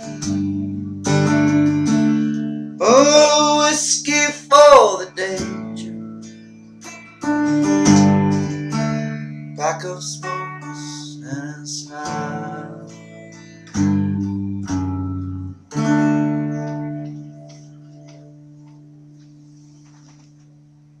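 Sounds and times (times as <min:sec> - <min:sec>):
electric guitar chords: 0:00.0 - 0:21.0
person singing: 0:02.8 - 0:06.0, 0:09.6 - 0:13.2.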